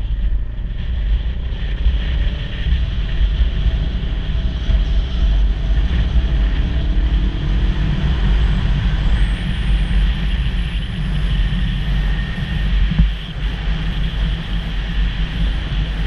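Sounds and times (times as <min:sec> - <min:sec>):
wind noise on camera: 0:00.0 - 0:16.0.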